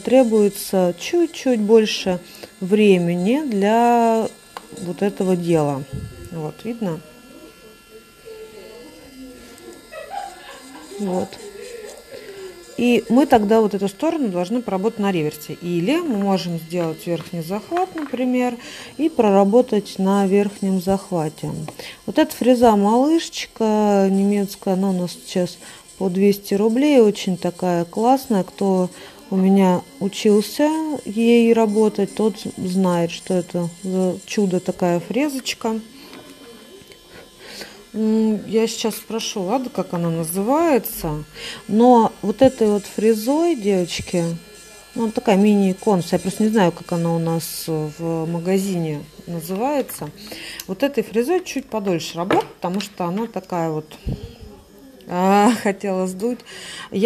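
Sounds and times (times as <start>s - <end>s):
nail drill whining: 0.0s - 55.6s.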